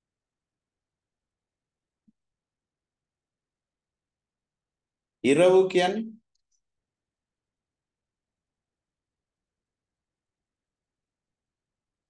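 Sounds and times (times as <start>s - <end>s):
person speaking: 5.2s - 6.3s.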